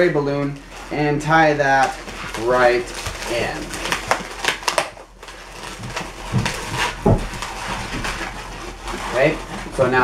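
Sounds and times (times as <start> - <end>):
latex balloons rubbing: 0.0 - 10.0.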